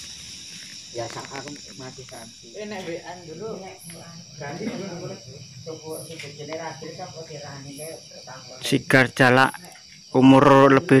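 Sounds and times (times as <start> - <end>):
night insects trilling: 0.0 - 11.0
men talking indistinctly: 4.4 - 11.0.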